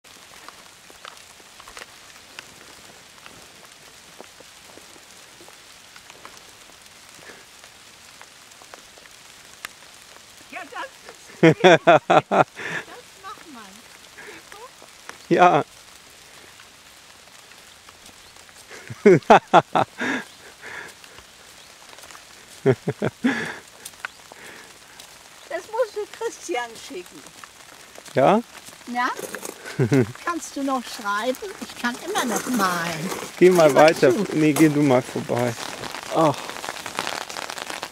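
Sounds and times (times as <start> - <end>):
light rain hiss: 0.0 - 37.9
raindrop ticks: 0.0 - 37.9
person laughing breathily: 11.3 - 13.0, 18.7 - 21.0, 22.6 - 23.8, 29.5 - 30.1.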